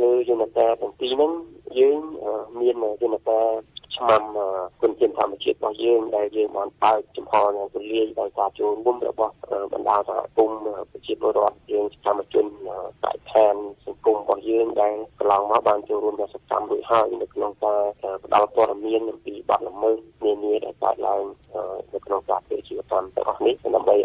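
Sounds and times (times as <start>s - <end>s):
muffled radio voice talking: 0.0s - 24.0s.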